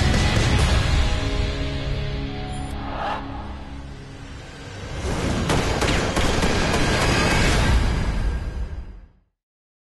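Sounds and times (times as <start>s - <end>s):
trailer music deep rumble: 0.0s - 9.0s
sharp impact hits: 2.4s - 5.8s.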